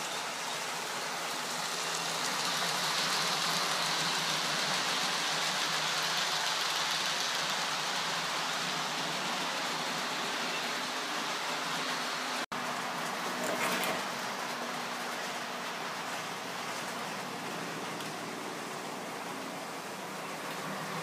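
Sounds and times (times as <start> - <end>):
model train wheels rolling: 0.0 - 21.0.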